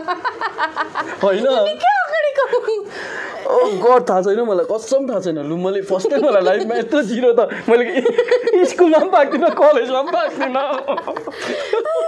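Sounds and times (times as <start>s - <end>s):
people speaking: 1.2s - 2.9s, 3.5s - 11.2s
woman and man laughing: 5.9s - 12.0s.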